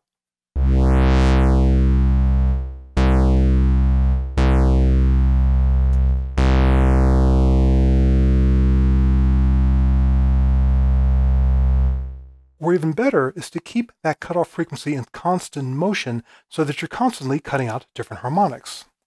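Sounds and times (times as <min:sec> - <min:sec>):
synthesizer bass note with sweeping filter: 0:00.6 - 0:12.4.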